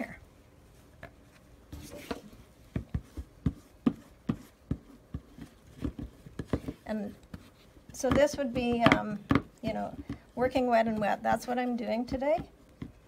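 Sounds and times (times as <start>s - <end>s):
scraper tapping and scraping paint: 1.0s - 13.0s.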